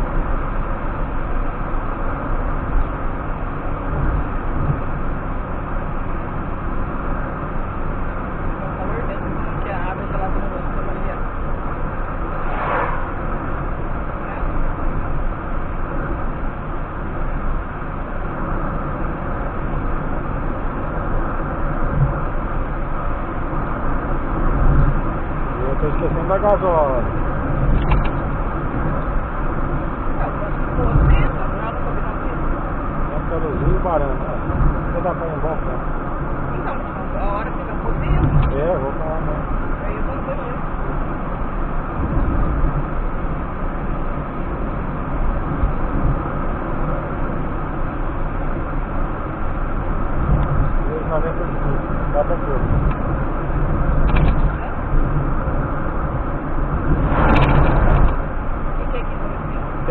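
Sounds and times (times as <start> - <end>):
low road thumps: 0.0 - 5.8, 11.3 - 31.7, 40.7 - 59.9
car road and engine noise: 0.0 - 59.9.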